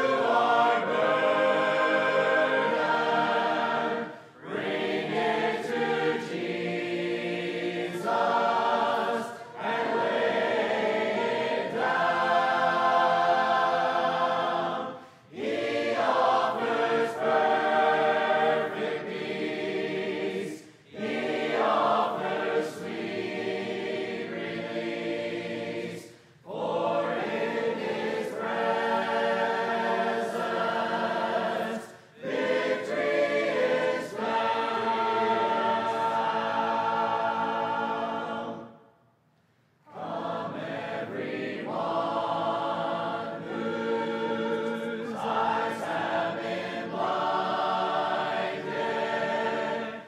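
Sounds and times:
congregation singing a hymn: 0.0s - 39.0s, 39.8s - 50.0s.

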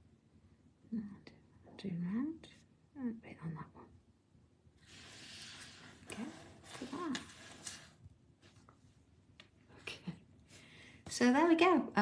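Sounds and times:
soft rustling hiss: 4.7s - 11.6s.

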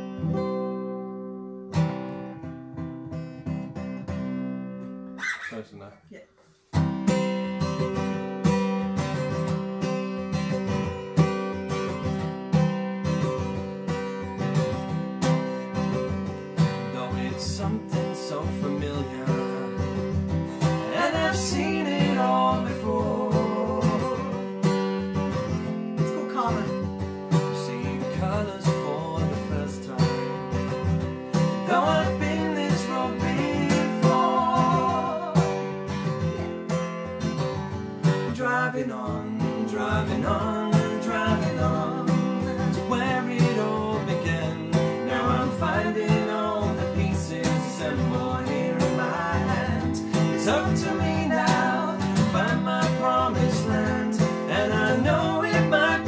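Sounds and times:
acoustic guitar strumming: 0.0s - 6.0s, 6.6s - 56.0s
woman and man singing: 20.6s - 24.4s, 31.6s - 35.7s, 38.3s - 56.0s.

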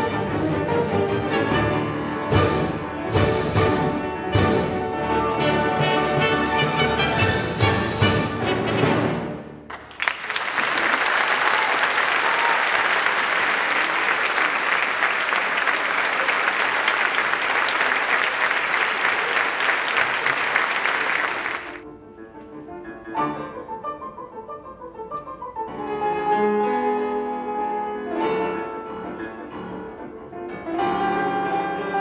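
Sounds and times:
orchestra with brass: 0.0s - 9.7s, 12.4s - 24.9s
audience applauding: 9.7s - 21.8s.

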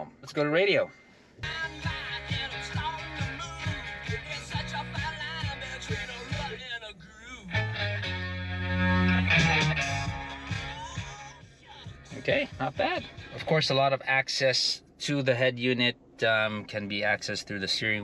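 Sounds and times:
radio music through car speakers: 0.0s - 18.0s.

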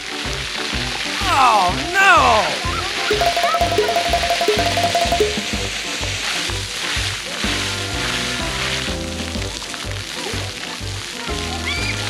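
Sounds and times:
fountain jets spraying water: 0.0s - 5.4s, 6.4s - 12.0s.

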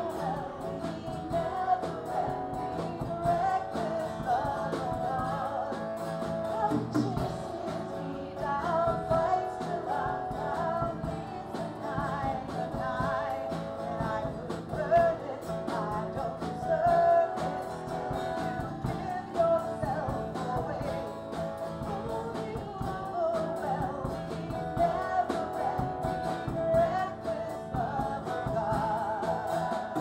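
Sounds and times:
acoustic guitar strumming: 0.0s - 30.0s
drum kit beat: 0.0s - 30.0s
woman singing: 0.0s - 30.0s.

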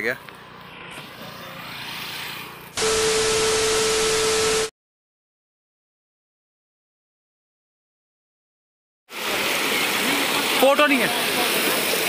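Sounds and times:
steady beep tone: 2.8s - 4.7s
tv static: 2.8s - 4.7s.

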